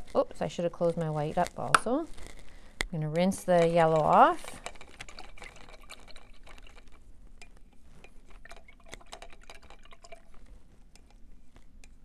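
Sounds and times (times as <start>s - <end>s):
paintbrush rinsed in water jar: 3.2s - 11.2s.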